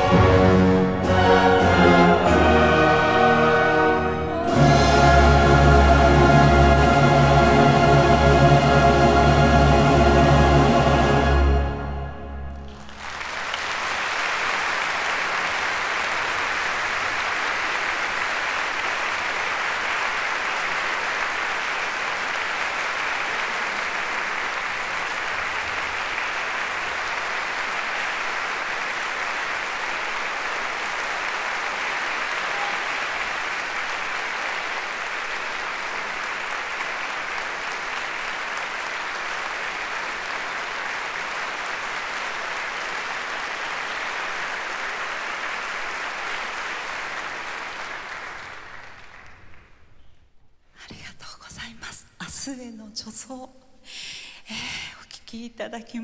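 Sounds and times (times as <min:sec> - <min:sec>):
audience applauding: 0:12.4 - 0:50.0.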